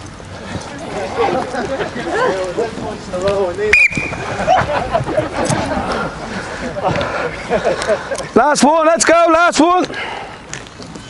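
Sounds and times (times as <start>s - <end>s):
voices chattering and calling: 0.0s - 11.0s
whistle blast: 3.7s - 4.3s.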